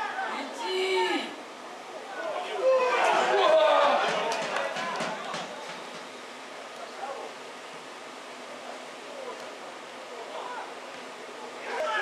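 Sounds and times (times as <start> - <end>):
voices shouting: 0.0 - 5.8, 11.5 - 12.0.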